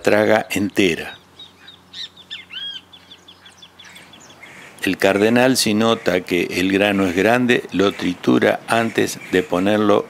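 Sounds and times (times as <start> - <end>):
small birds chirping: 0.0 - 10.0.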